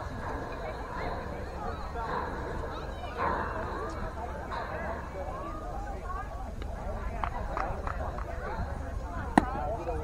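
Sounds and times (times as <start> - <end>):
distant voices shouting: 0.0 - 6.3.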